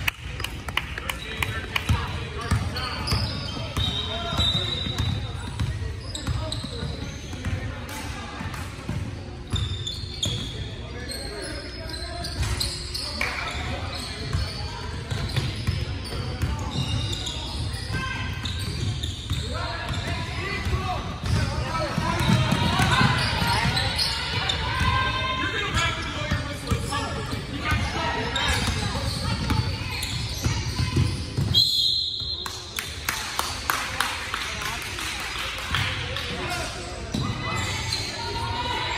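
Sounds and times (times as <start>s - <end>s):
referee's whistle: 2.8s - 5.2s, 31.2s - 32.6s.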